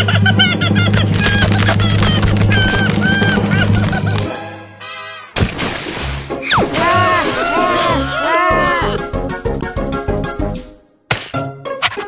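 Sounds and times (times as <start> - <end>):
cartoon background music: 0.0 - 12.0
ice creaking: 1.0 - 4.2.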